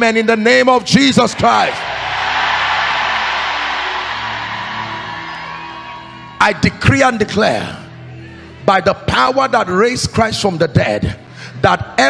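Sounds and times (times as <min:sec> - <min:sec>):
congregation shouting and cheering: 0:01.1 - 0:08.2
soft sustained music: 0:01.4 - 0:12.0.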